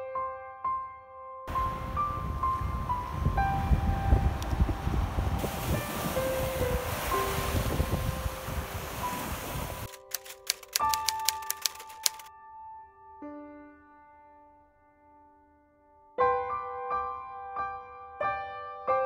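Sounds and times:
soft piano music: 0.0s - 19.0s
small waves washing on sand: 4.3s - 9.9s
sharp clicks: 9.8s - 12.3s.

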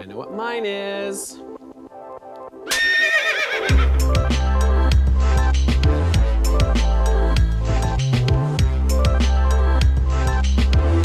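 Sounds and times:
horse whinnying: 2.7s - 3.9s
theme music with deep bass: 3.6s - 11.0s.

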